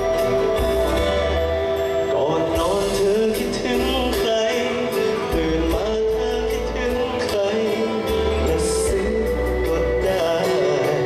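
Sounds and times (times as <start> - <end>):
live band playing: 0.0 - 11.0
man singing into a microphone: 1.9 - 11.0.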